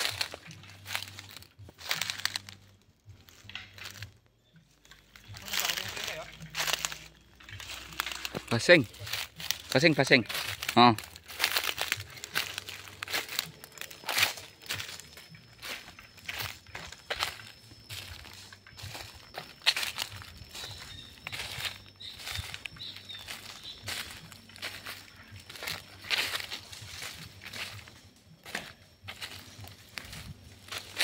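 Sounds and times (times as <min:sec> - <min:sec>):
footsteps on dry leaves and twigs: 0:00.0 - 0:31.0.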